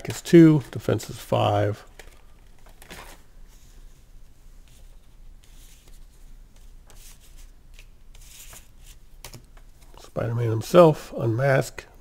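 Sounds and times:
paper cards rustling and tapping: 1.9 - 3.2, 4.7 - 10.0.

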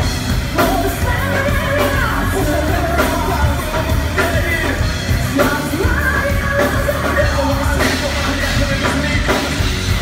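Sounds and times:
bass guitar: 0.0 - 10.0
drums: 0.0 - 10.0.

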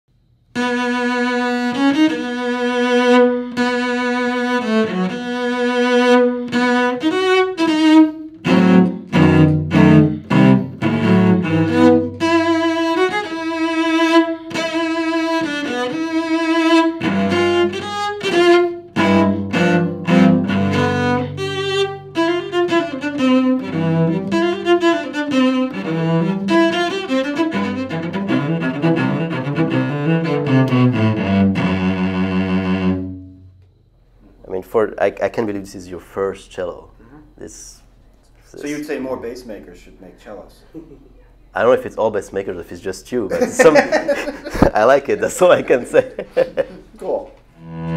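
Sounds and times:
solo cello played with bow: 0.5 - 33.6, 47.6 - 47.9.

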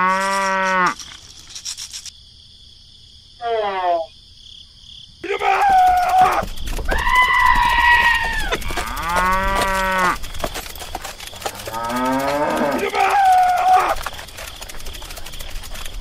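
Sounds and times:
cattle mooing: 7.4 - 10.2, 11.4 - 14.0.

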